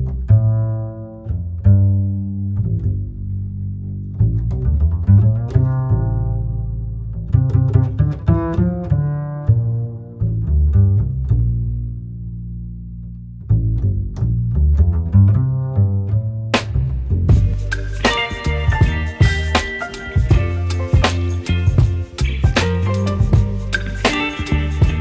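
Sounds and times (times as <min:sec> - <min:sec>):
plucked low string notes: 0:00.0 - 0:25.0.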